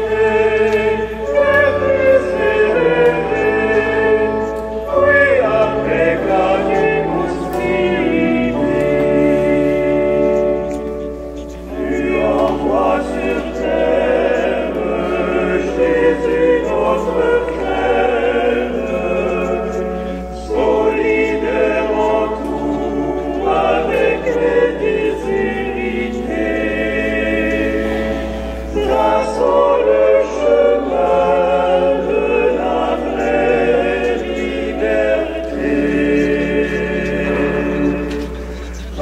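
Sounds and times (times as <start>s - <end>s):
voices singing a hymn: 0.0s - 39.0s.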